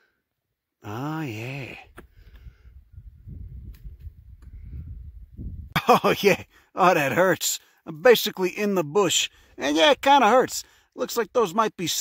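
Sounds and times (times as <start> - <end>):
low rumbling microphone noise: 1.8 - 5.8.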